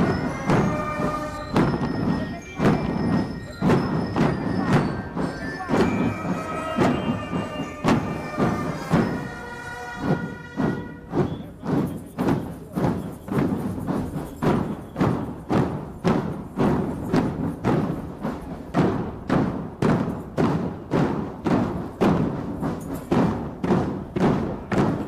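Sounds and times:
marching drums beating a cadence: 0.0 - 25.0.

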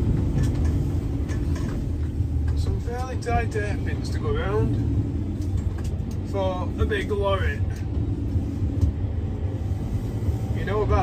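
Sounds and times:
vehicle engine and tyres rumbling: 0.0 - 11.0.

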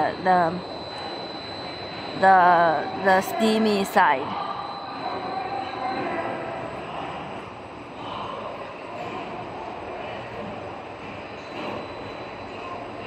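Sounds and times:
faint high steady tone: 0.0 - 7.0
factory machinery humming: 0.0 - 13.0.

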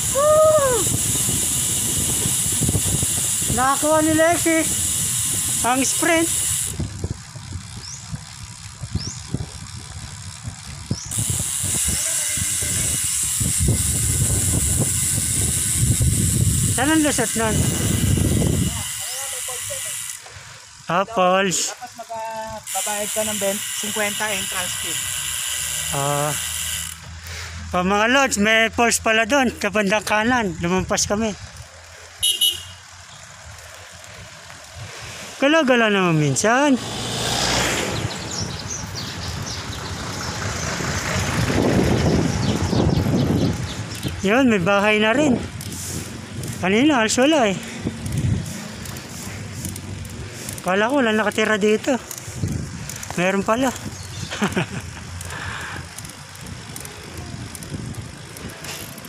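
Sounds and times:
wind rushing over microphone: 0.0 - 19.0, 33.5 - 35.4, 36.2 - 59.0
bicycle tyre rumble on road: 0.0 - 59.0.

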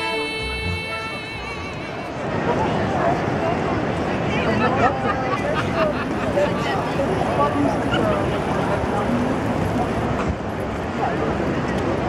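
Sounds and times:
many distant voices: 0.0 - 12.0
street rumble: 0.0 - 12.0.

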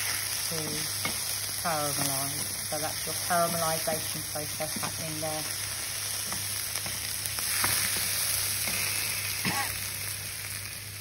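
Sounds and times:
vegetables sizzling in a frying pan: 0.0 - 11.0.

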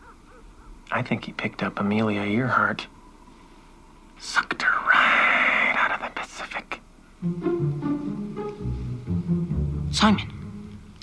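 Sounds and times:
man speaking: 9.8 - 10.6.

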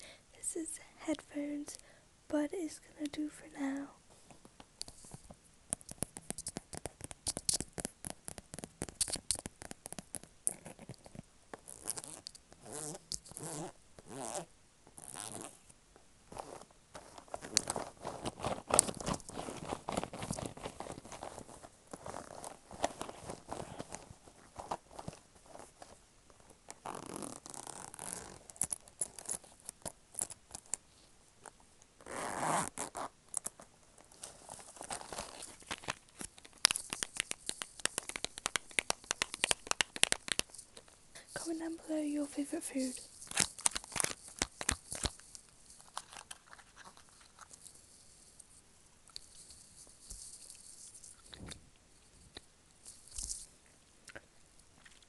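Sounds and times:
zip pouch being zipped: 11.7 - 15.6, 26.8 - 29.3, 32.0 - 33.1.

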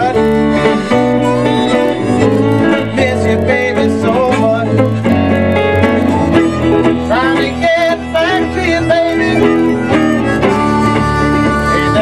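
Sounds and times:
live blues band playing: 0.0 - 12.0
sliding electric guitar: 0.0 - 12.0.

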